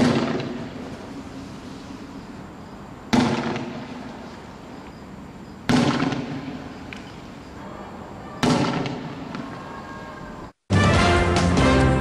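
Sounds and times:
loud explosive bangs with echo: 0.0 - 0.7, 3.1 - 4.0, 5.7 - 6.6, 8.4 - 9.3.

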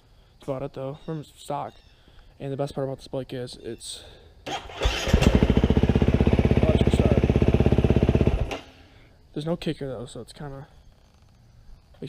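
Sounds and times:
dirt bike engine starting and idling: 4.5 - 9.1.

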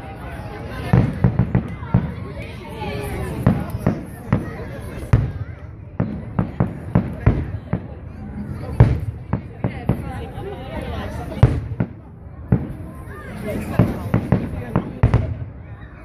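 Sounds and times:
fireworks bursting: 0.7 - 2.4, 3.2 - 10.4, 11.2 - 15.7.

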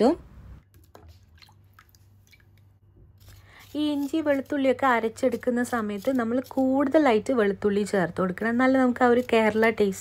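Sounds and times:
water dripping and splashing: 0.7 - 2.7.

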